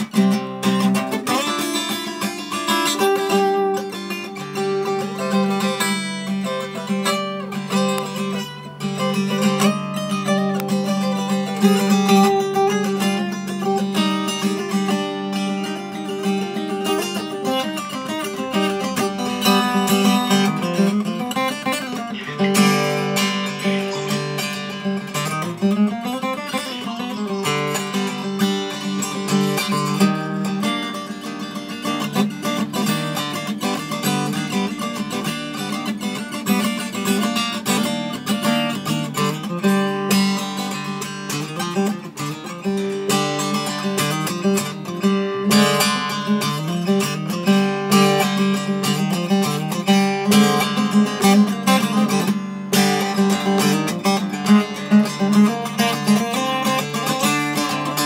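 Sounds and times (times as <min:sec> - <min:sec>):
fingerpicked acoustic guitar: 0:00.0 - 0:58.0.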